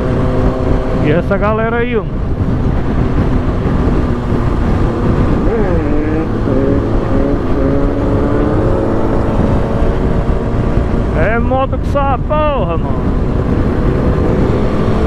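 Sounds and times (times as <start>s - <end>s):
motorcycle engine cruising: 0.0s - 15.0s
wind rumble on microphone: 0.0s - 15.0s.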